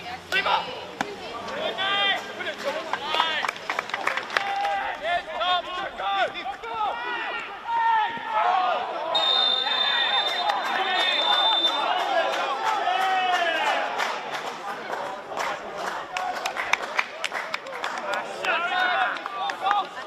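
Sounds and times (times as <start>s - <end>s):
players shouting: 0.2s - 15.2s, 18.0s - 20.0s
referee's whistle blast: 9.1s - 11.9s.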